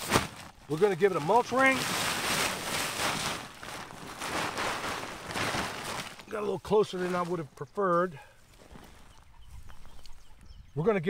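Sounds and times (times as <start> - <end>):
mulch rustling and scraping: 0.0 - 9.2.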